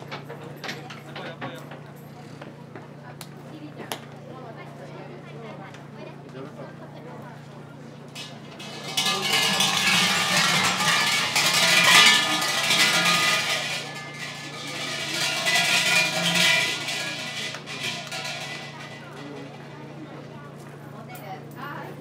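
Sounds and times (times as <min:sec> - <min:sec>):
shrine bell jangling: 0:08.6 - 0:19.6.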